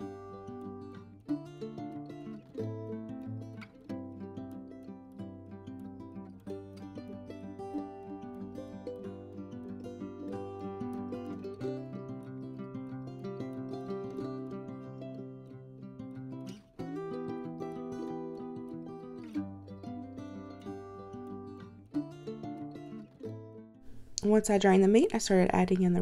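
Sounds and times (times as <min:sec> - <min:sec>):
instrumental music with plucked strings: 0:00.0 - 0:24.2.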